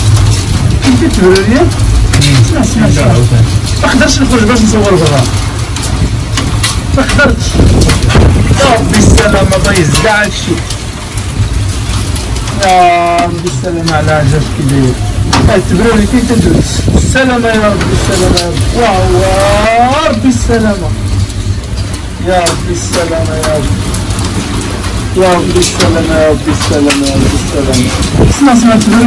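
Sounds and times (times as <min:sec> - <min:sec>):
hailstones clattering: 0:00.0 - 0:29.0
heavy rain: 0:00.0 - 0:29.0
loud low rumble: 0:00.0 - 0:29.0
wind on microphone: 0:05.2 - 0:13.2, 0:14.5 - 0:19.6, 0:26.6 - 0:29.0.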